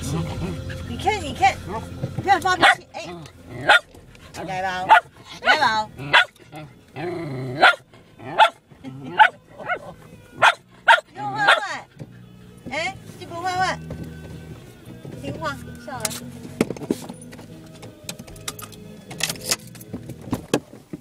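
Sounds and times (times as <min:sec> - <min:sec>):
dog barking: 0:02.6 - 0:02.9, 0:03.6 - 0:03.9, 0:04.8 - 0:06.4, 0:07.6 - 0:11.8.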